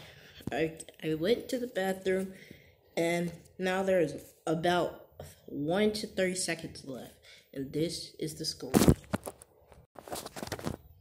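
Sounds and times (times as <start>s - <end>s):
rustles and clicks of handling: 8.8s - 11.0s.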